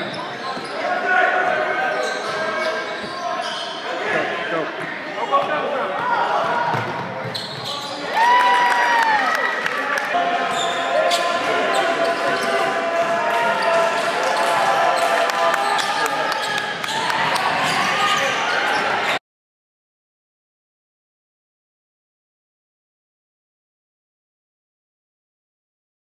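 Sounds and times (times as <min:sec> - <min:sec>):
basketball bouncing on court: 0:06.0 - 0:07.8.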